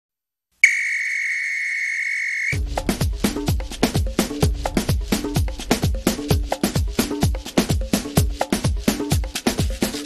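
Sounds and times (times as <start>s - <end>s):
high whistle tone: 0.6s - 2.6s
electronic dance music: 2.4s - 10.0s.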